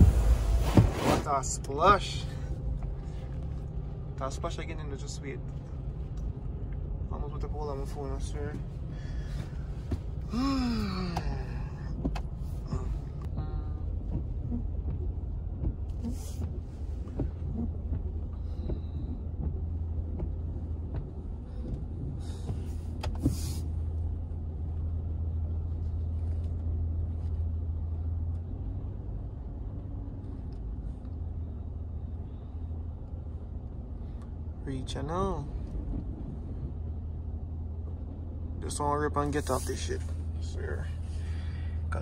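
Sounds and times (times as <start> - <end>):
short swishes: 0.0 - 1.6
low engine rumble inside car: 0.0 - 42.0.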